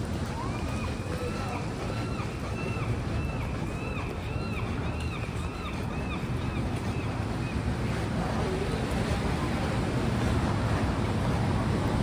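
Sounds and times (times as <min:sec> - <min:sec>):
traffic on wet pavement: 0:00.0 - 0:12.0.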